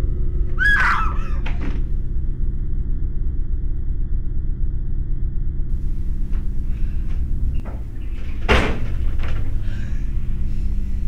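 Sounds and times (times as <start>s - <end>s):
steady low rumble: 0.0s - 11.0s
toilet cubicle door banging shut: 8.4s - 9.4s.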